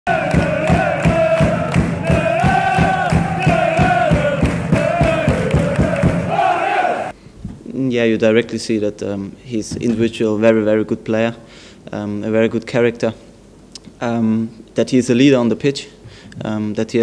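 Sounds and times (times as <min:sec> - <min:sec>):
fast drumbeat: 0:00.1 - 0:06.4
voices chanting: 0:00.1 - 0:07.1.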